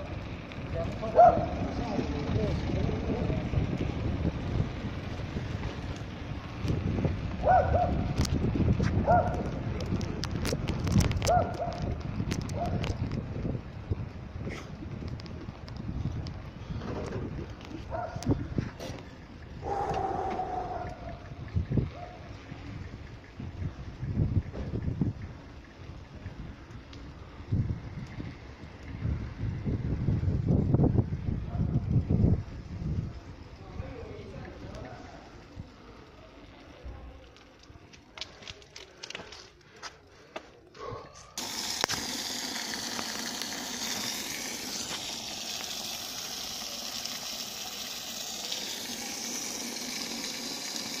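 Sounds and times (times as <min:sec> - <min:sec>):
wind buffeting microphone: 0:00.7 - 0:34.9
water splashing onto stone: 0:41.4 - 0:51.0.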